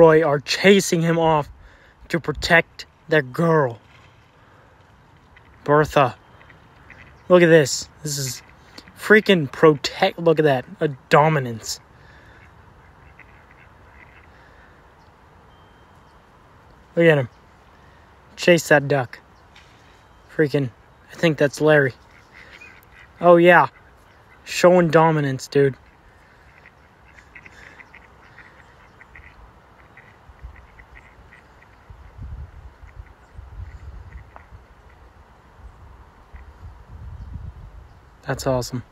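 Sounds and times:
outdoor background noise: 0:00.0 - 0:38.9
mallards calling faintly: 0:03.9 - 0:09.0, 0:11.8 - 0:15.2, 0:19.2 - 0:36.7
ducks quacking: 0:05.2 - 0:10.8, 0:11.5 - 0:14.8, 0:21.1 - 0:35.1.

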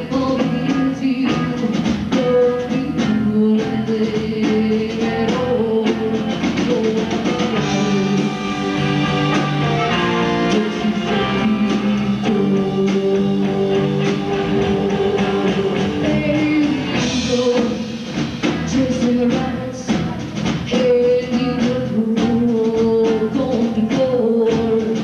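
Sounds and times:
live rock band playing: 0:00.0 - 0:25.0.

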